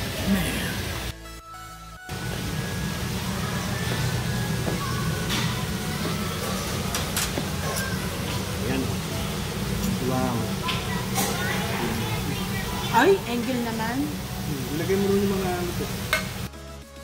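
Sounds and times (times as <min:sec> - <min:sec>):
indistinct diners talking: 0:03.1 - 0:15.9.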